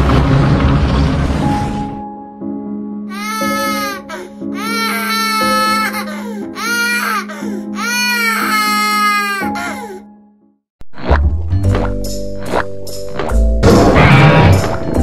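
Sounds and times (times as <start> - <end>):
infant crying: 3.1 - 10.1.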